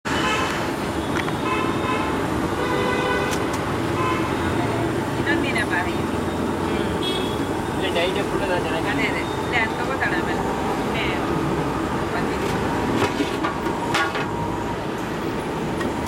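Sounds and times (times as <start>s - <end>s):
traffic engines: 0.0s - 16.0s
vehicle horns: 0.1s - 0.7s, 1.4s - 4.6s, 6.6s - 7.6s
voices: 4.3s - 7.0s, 7.7s - 12.8s.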